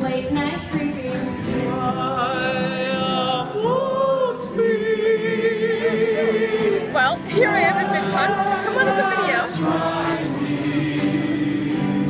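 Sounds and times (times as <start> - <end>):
group singing in harmony: 1.2 - 12.0.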